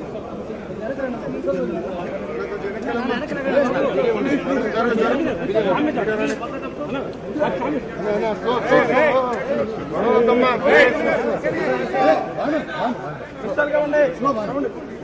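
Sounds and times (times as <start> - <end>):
crowd chatter: 0.0 - 15.0.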